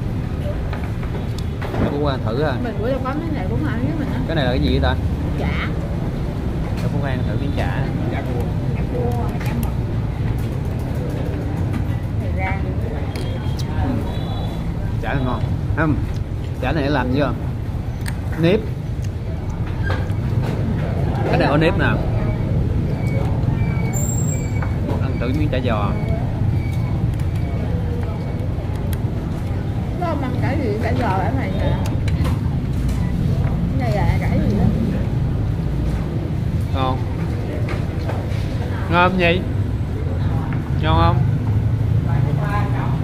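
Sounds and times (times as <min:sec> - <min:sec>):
indistinct chatter: 0:00.0 - 0:43.0.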